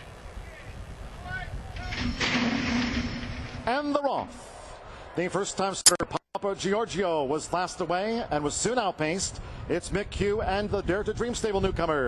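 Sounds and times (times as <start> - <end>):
wind rumble on microphone: 0.0 - 3.7, 9.3 - 12.0.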